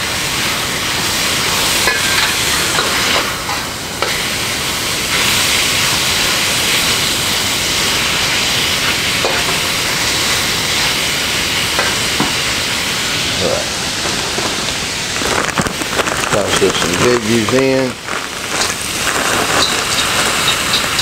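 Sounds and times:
meat sizzling in a wok: 0:00.0 - 0:21.0
metal spatula scraping a wok: 0:19.5 - 0:21.0.

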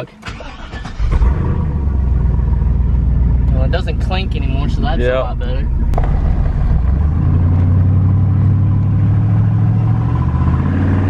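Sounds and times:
pickup engine starting and idling: 0:00.0 - 0:10.4.

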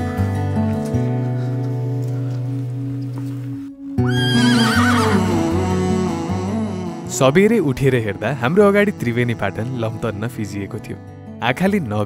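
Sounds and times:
background music: 0:00.0 - 0:12.0
horse whinnying: 0:04.0 - 0:05.6.

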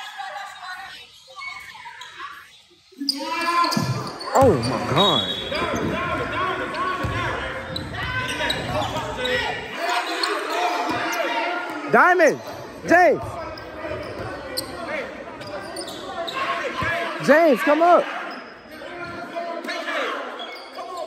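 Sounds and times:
sneakers squeaking: 0:00.2 - 0:11.8, 0:12.4 - 0:17.3, 0:18.0 - 0:21.0
players' voices echoing: 0:02.4 - 0:21.0.

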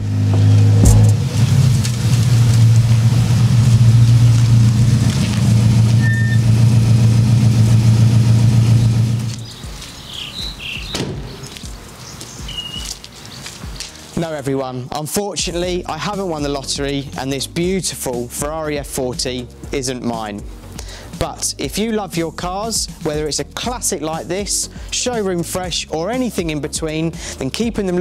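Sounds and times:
car engine idling: 0:00.0 - 0:12.0
birds chirping: 0:08.7 - 0:14.2.

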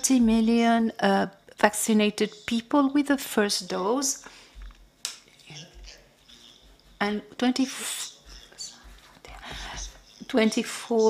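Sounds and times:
soft breathing: 0:04.2 - 0:04.8, 0:07.8 - 0:10.2.

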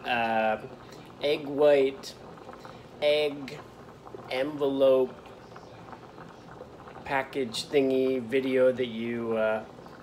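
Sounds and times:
water bubbling in a pot: 0:00.0 - 0:10.0.

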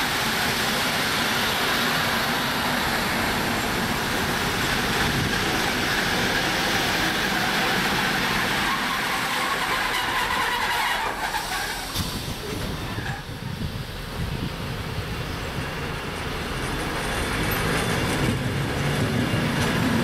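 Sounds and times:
train wheels rolling on rails: 0:00.0 - 0:20.0.

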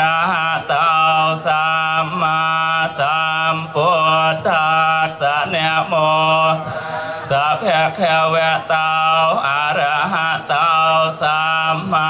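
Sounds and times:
monks chanting: 0:00.0 - 0:12.0.

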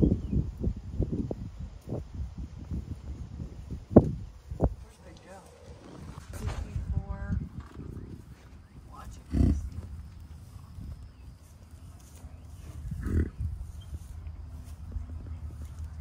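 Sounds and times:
bison grunting: 0:04.9 - 0:06.8, 0:09.0 - 0:10.0, 0:12.3 - 0:13.6.

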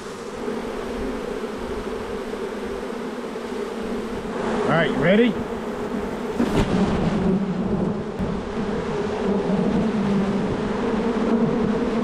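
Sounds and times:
bee swarm buzzing: 0:00.0 - 0:12.0.

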